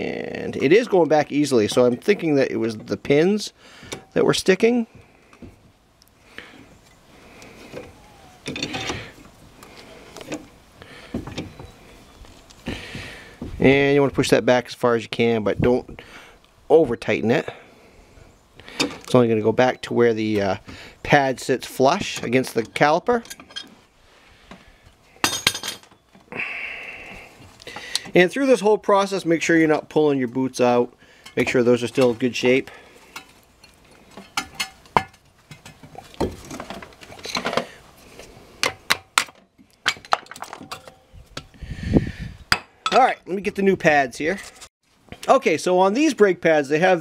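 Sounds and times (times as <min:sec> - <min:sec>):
metal tool and brake parts clinking: 0:22.2 - 0:23.7, 0:25.2 - 0:26.0, 0:39.2 - 0:41.5.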